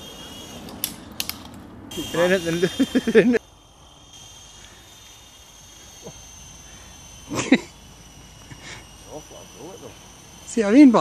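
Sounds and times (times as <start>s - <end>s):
small motor whine: 0.0s - 11.0s
sharp clicks: 0.6s - 1.6s.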